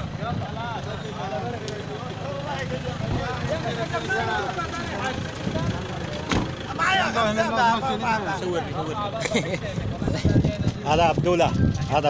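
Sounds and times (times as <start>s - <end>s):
low steady rumble: 0.0s - 12.0s
men talking: 0.0s - 12.0s.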